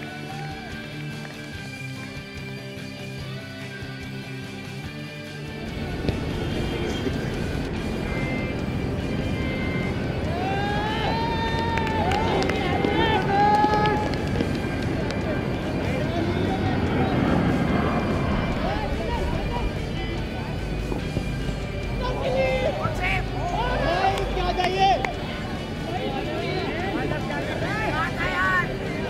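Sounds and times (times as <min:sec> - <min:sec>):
footballers shouting: 0:00.0 - 0:00.8, 0:05.7 - 0:29.0
steady outdoor noise: 0:00.0 - 0:29.0.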